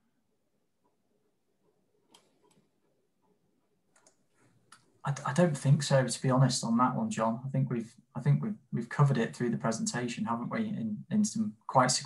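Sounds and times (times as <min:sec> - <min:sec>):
faint clicks: 0:01.6 - 0:05.0.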